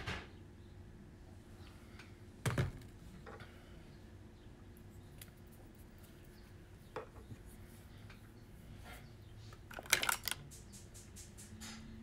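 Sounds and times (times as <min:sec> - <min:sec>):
small plastic items clicking: 0:09.7 - 0:10.5.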